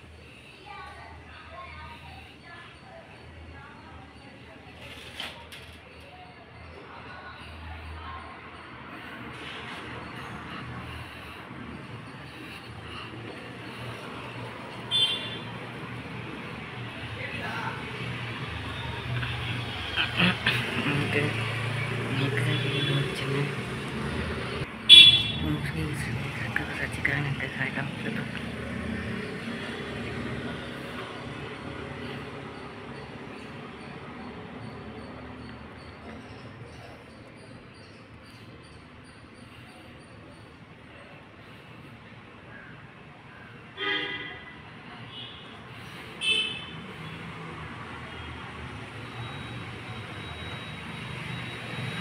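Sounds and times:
outdoor street noise: 0.0 - 52.0
vehicle horn toot: 14.9 - 15.4, 24.9 - 25.4
man talking: 20.0 - 24.0, 25.3 - 28.6.

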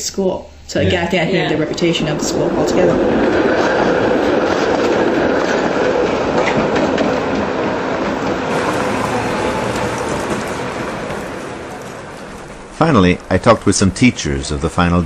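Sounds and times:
streetcar rumbling on rails: 0.8 - 15.0.

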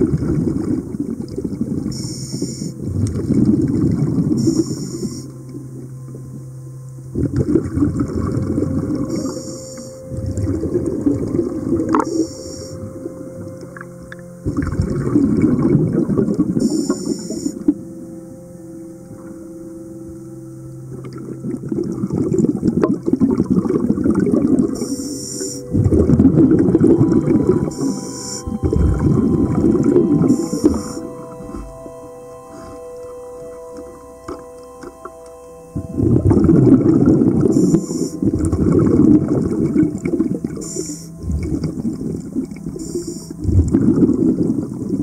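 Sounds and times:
exhaled air bubbling underwater: 0.0 - 45.0
regulator inhalation hiss: 4.4 - 5.3, 24.8 - 25.7, 27.7 - 28.6, 40.6 - 41.1, 42.8 - 43.4.

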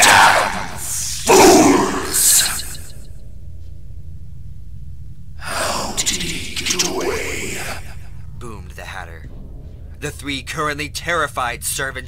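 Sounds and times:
low steady drone: 0.0 - 12.0.

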